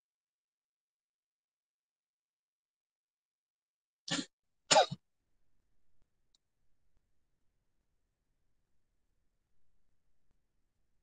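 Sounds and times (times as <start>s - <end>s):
person clearing throat: 4.1s - 5.0s.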